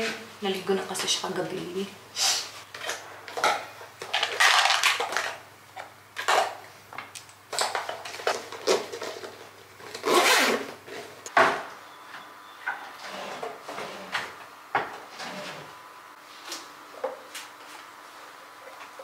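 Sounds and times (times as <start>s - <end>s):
zipper being pulled: 10.0s - 10.8s.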